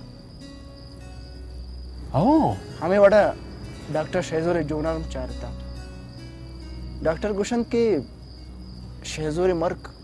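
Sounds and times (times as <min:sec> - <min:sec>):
crickets chirring: 0:00.0 - 0:10.0.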